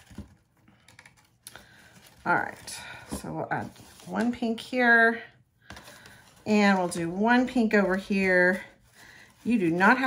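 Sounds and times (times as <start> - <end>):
gift box rustling: 0.0 - 4.6, 5.7 - 10.0.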